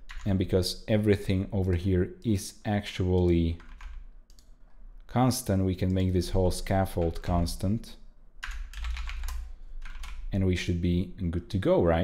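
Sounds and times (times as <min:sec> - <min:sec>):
computer keyboard typing: 0:00.0 - 0:00.3, 0:03.2 - 0:04.5, 0:06.9 - 0:07.4, 0:08.4 - 0:10.3.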